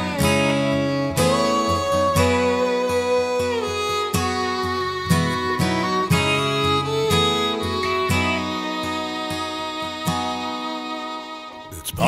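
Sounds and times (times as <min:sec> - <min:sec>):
acoustic guitar strumming: 0:00.0 - 0:12.0
fiddle melody: 0:00.0 - 0:12.0.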